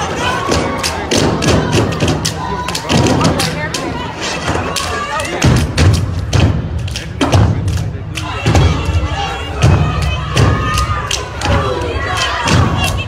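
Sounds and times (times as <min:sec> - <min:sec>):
voices: 0:00.0 - 0:13.0
music: 0:05.4 - 0:13.0.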